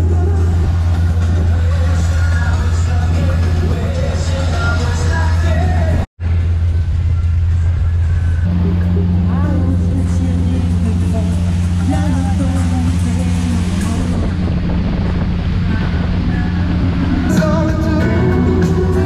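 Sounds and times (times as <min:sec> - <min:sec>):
pop music with singing: 0:00.0 - 0:06.1, 0:08.8 - 0:19.0
motorboat engine drone: 0:00.0 - 0:19.0
steady hum: 0:00.0 - 0:19.0.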